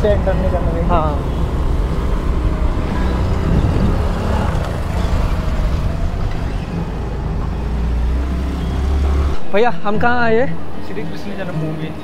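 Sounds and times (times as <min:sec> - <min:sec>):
tyres on brick paving: 0:00.0 - 0:12.0
small scooter engine running: 0:00.1 - 0:06.8
wind rumble on microphone: 0:01.4 - 0:07.4.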